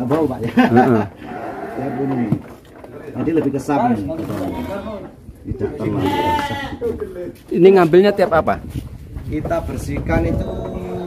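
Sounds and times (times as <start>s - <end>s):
sheep bleating: 4.3s - 5.1s, 5.8s - 6.8s.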